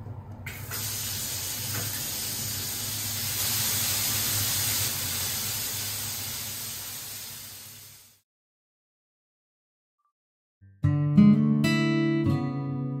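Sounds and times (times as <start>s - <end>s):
water pouring into bathtub: 0.5s - 8.1s.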